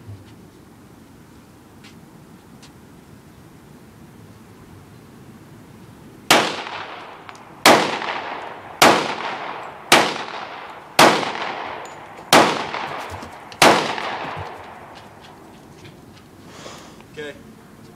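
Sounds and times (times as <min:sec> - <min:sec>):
pistol shots with echo: 0:06.3 - 0:14.9.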